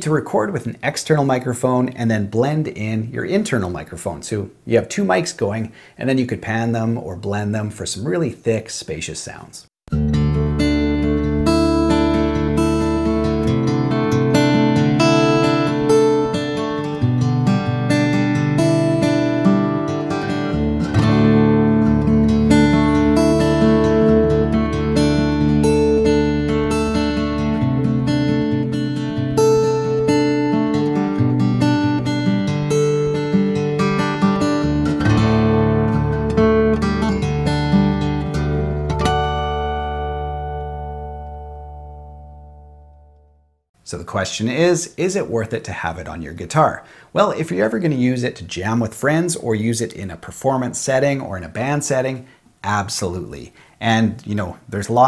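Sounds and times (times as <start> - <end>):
fingerstyle acoustic guitar: 9.9 - 43.1.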